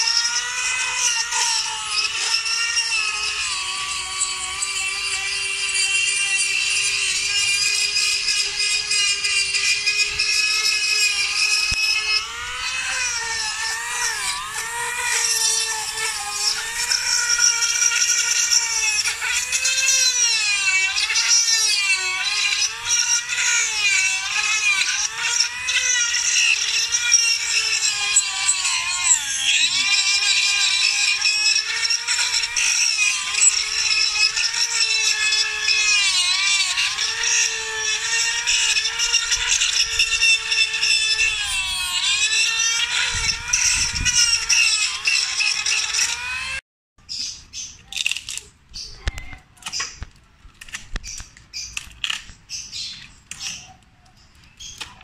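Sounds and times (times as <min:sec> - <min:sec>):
rotary tool grinding wood: 0:00.0 - 0:46.6, 0:47.2 - 0:55.0.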